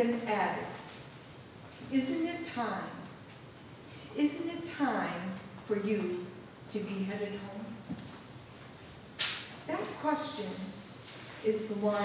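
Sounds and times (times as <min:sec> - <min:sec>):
woman speaking: 0:00.0 - 0:00.8, 0:01.9 - 0:03.1, 0:04.2 - 0:07.9, 0:09.7 - 0:10.8, 0:11.4 - 0:12.0.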